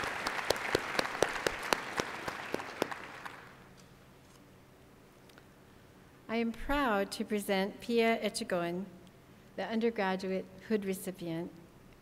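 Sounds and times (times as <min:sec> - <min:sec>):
audience applauding: 0:00.0 - 0:03.7.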